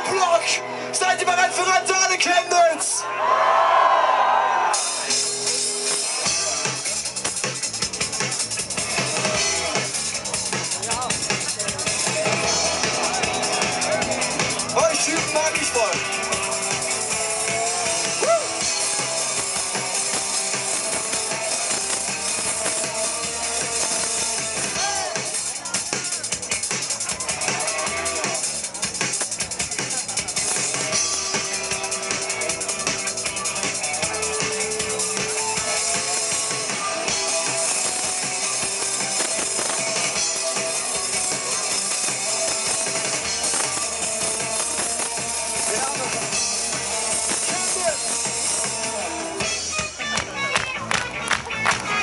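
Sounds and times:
electric guitars: 4.6s - 52.0s
drum kit: 4.7s - 52.0s.

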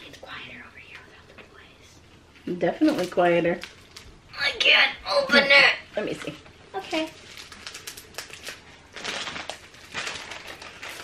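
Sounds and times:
person whispering: 0.0s - 2.0s.

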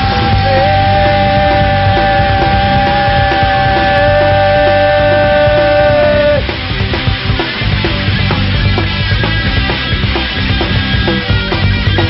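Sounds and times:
regular drum beat: 0.0s - 12.0s.

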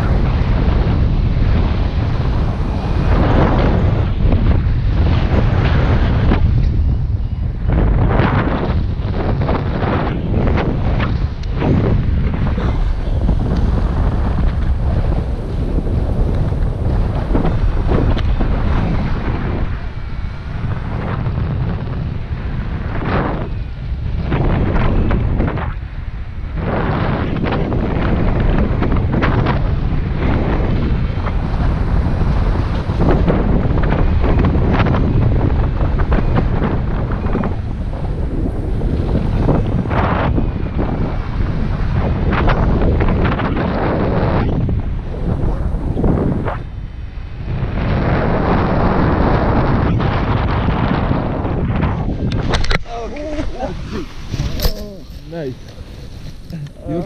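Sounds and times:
wind rushing over microphone: 0.0s - 57.0s.

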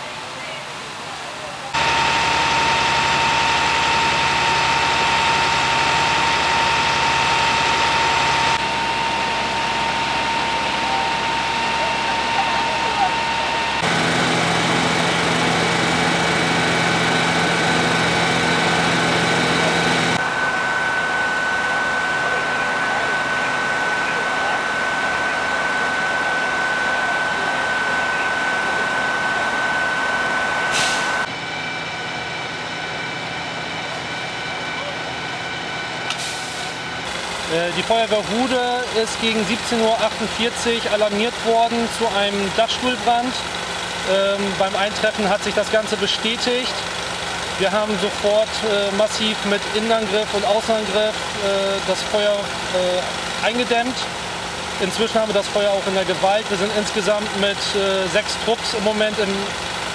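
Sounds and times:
fire engine engines running: 0.0s - 59.9s
high whine: 1.8s - 43.3s.

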